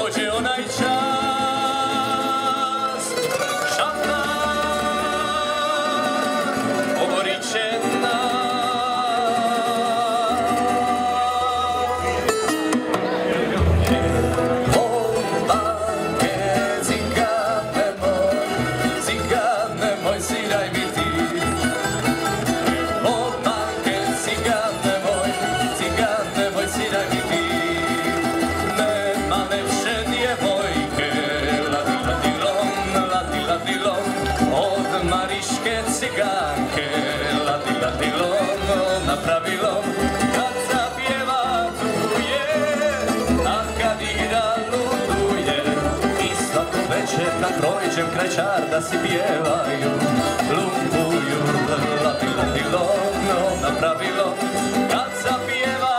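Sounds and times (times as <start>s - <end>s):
plucked double bass: 0.0s - 55.9s
plucked string ensemble: 0.0s - 55.9s.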